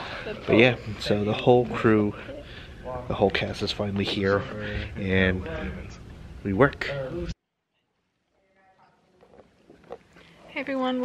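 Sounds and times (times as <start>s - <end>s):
distant voices talking: 0.0s - 7.4s.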